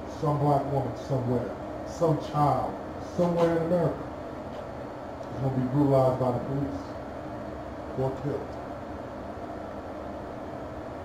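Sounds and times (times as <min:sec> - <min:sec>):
faint hum: 0:00.0 - 0:11.0
low rumble and hiss: 0:00.0 - 0:11.0.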